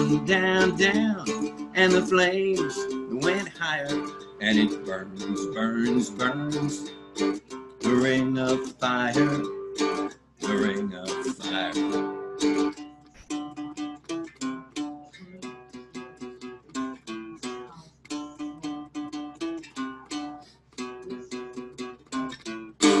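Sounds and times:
cigar box guitar strumming and picking: 0:00.0 - 0:23.0.

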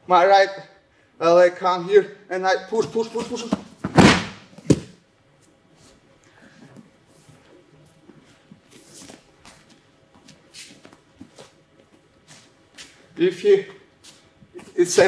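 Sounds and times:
bare footsteps on foam mats: 0:03.3 - 0:05.0.

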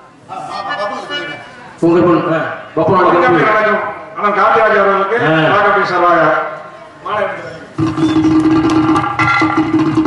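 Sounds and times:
harmonium holding a note: 0:00.3 - 0:02.3
tabla and drum strokes: 0:07.8 - 0:10.0.

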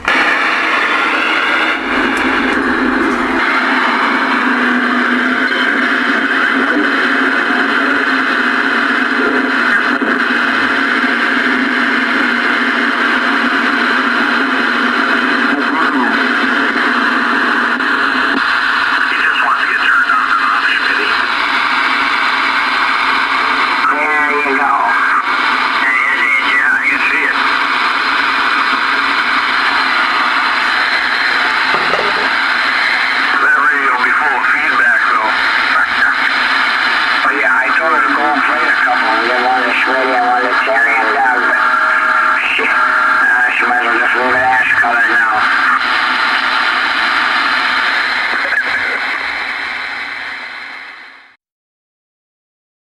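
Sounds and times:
radio static hiss: 0:00.0 - 0:51.4
garbled warbling radio voices: 0:15.3 - 0:16.3, 0:19.0 - 0:21.4, 0:23.8 - 0:27.6, 0:30.6 - 0:46.0, 0:48.2 - 0:49.3.

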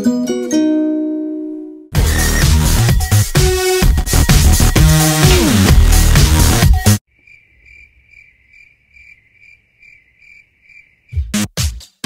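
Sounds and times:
electronic dance music: 0:02.0 - 0:07.0
cricket chirping: 0:07.1 - 0:11.2.

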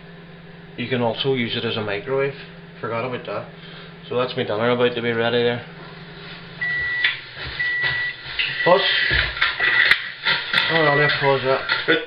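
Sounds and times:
microwave beeping: 0:06.5 - 0:12.0.

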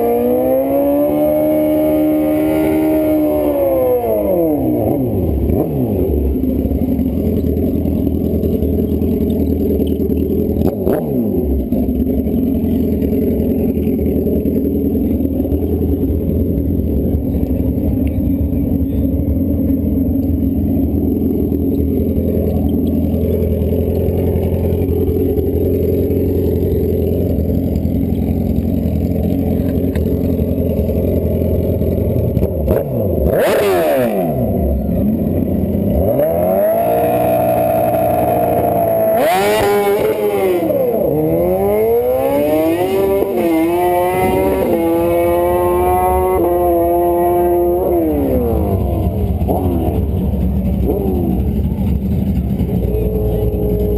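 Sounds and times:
motorcycle engine idling: 0:02.4 - 0:53.9.

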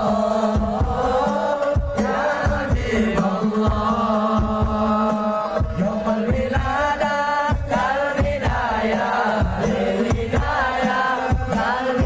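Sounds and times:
steady drum beat: 0:00.0 - 0:12.0
voices chanting in unison: 0:00.0 - 0:12.0.

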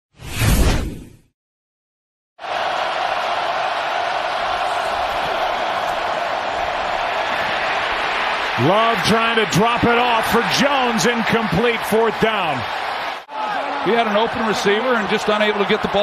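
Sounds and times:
stadium crowd noise: 0:02.4 - 0:16.0.

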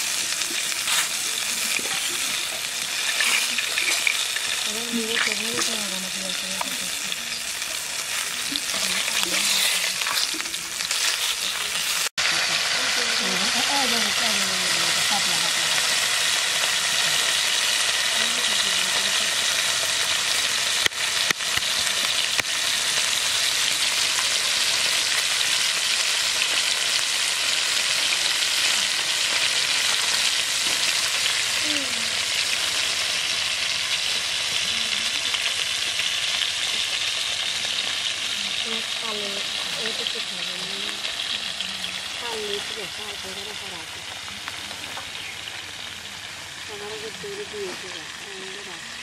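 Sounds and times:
fish sizzling in oil: 0:00.0 - 0:49.0.

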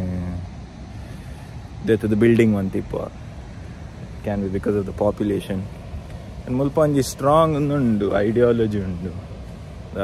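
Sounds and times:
man speaking: 0:00.0 - 0:00.5, 0:01.8 - 0:03.2, 0:04.2 - 0:05.7, 0:06.5 - 0:09.3.

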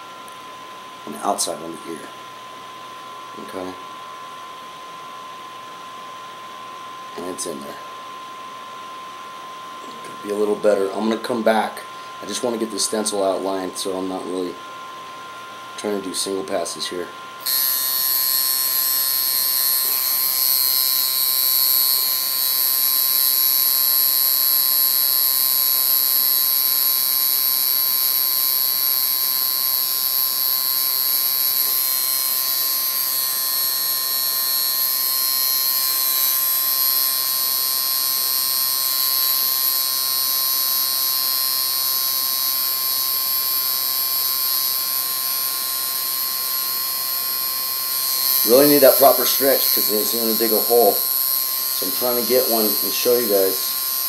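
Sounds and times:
tattoo machine buzzing: 0:09.2 - 0:54.0.

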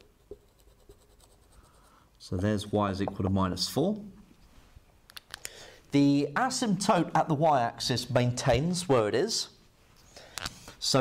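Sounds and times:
marker pen on whiteboard: 0:00.0 - 0:02.0.

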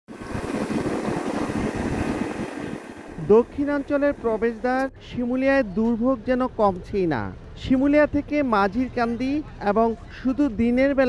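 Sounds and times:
wind buffeting microphone: 0:00.1 - 0:05.6
boat motors humming: 0:00.1 - 0:11.0.

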